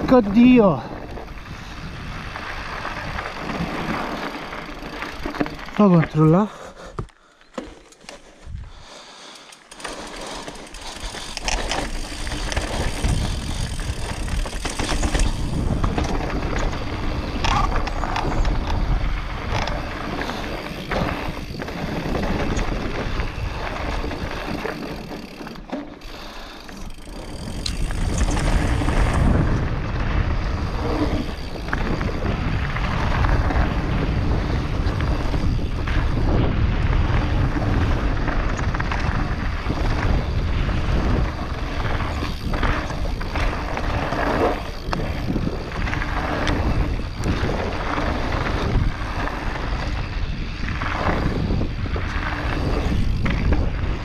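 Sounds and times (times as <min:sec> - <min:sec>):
wind buffeting microphone: 0:00.0 - 0:06.3, 0:10.2 - 0:25.4, 0:26.8 - 0:54.0
bike rattling over stones: 0:00.0 - 0:54.0.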